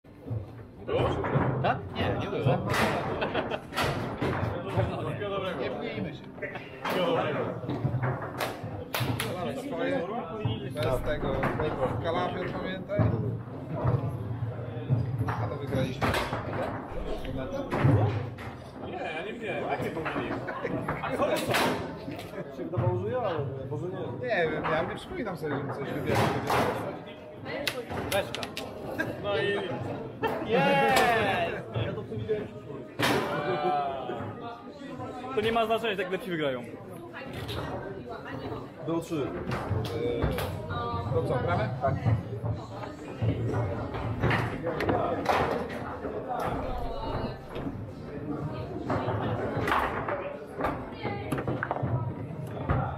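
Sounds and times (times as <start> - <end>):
background chatter: 0.0 - 52.9.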